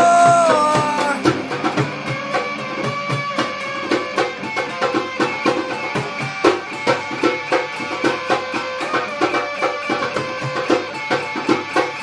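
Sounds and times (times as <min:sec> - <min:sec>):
plucked-string riff: 0:00.0 - 0:12.0
steady drum beat: 0:00.0 - 0:12.0.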